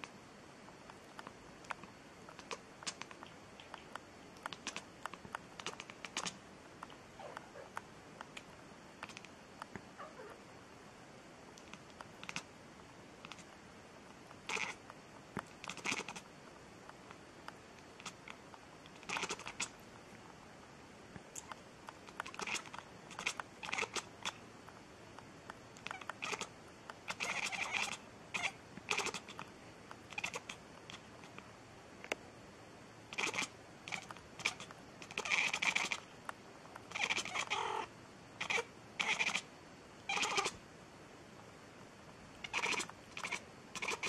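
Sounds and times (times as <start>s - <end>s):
small sharp clicks and taps: 0.7s - 9.9s
cat meowing: 40.1s - 40.5s.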